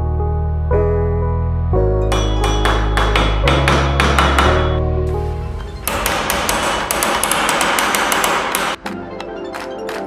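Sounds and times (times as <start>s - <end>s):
background music: 0.0s - 10.0s
hammer striking steel wedge: 2.1s - 4.8s, 5.8s - 8.8s.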